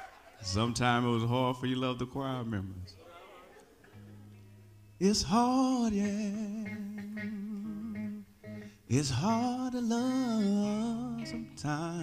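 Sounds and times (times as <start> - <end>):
person singing gospel song: 0.0 - 3.5, 5.0 - 12.0.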